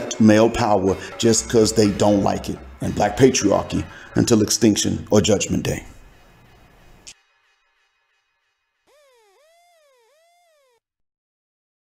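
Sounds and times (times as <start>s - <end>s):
synth siren warbling: 8.9s - 10.8s.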